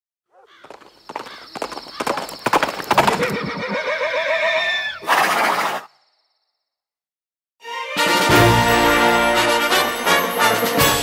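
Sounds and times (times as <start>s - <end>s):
horse hoofbeats: 0.4s - 4.2s
horse neighing: 3.0s - 5.9s.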